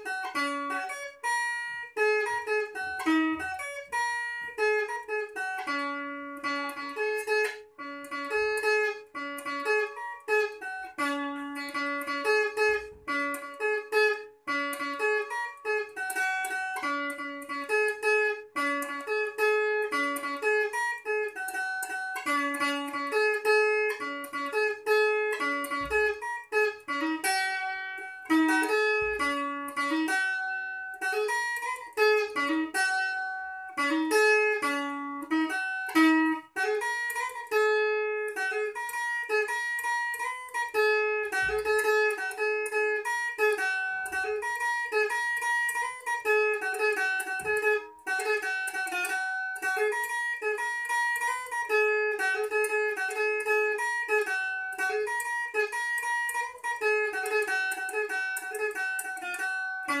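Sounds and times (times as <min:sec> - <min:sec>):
clean electric guitar solo: 0:00.0 - 1:00.0.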